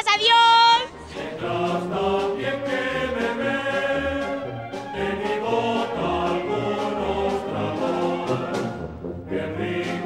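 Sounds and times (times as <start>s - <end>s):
many voices singing: 0.9s - 10.0s.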